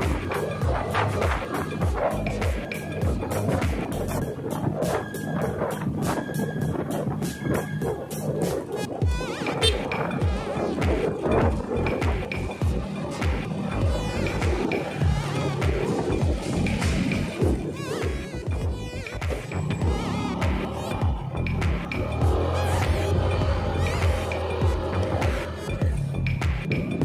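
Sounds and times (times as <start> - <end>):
background music with low drum beat: 0.0 - 27.0.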